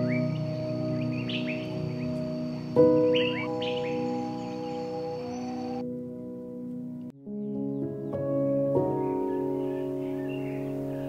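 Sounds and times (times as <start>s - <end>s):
birds chirping: 0.0s - 5.8s, 7.4s - 11.0s
soft piano chords: 0.0s - 11.0s.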